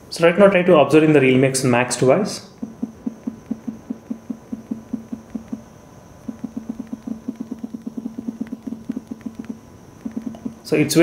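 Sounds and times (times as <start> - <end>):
phone vibration buzzing in pulses: 2.4 - 11.0.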